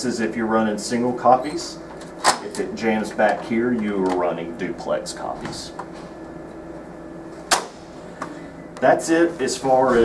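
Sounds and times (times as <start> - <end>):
low steady hum: 0.0 - 10.0
copier door clunk: 1.6 - 4.4, 7.4 - 8.4.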